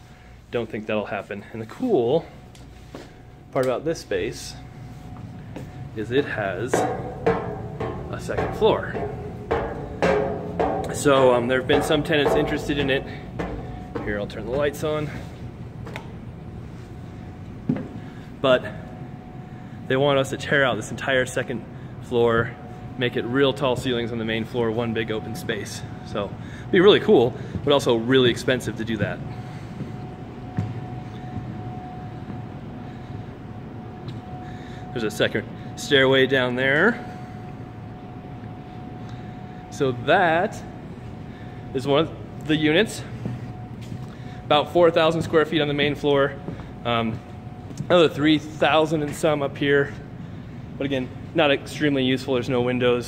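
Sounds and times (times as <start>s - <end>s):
faint high whine: 0.0s - 53.0s
room noise hum and hiss: 0.0s - 53.0s
footsteps on metal staircase: 5.0s - 16.8s, 26.8s - 33.0s, 42.8s - 44.2s.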